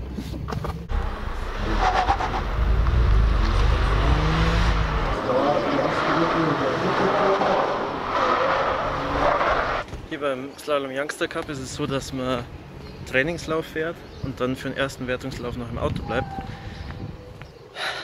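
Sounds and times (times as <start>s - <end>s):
car engine under load: 0.0s - 10.0s.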